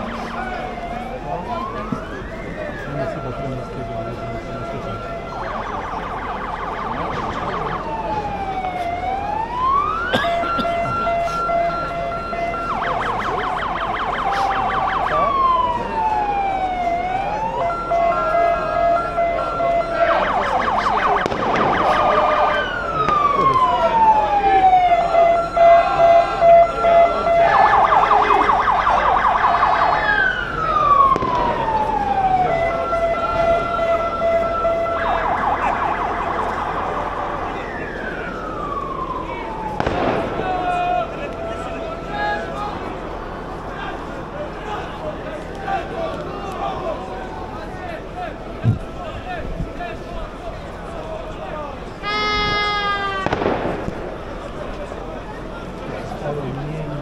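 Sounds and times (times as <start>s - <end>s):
electronic siren cycling modes: 0.0s - 10.0s, 10.7s - 39.8s.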